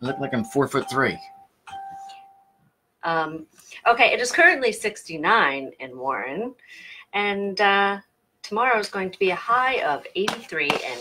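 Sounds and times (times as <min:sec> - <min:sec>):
bell-like ding: 0:00.0 - 0:02.5.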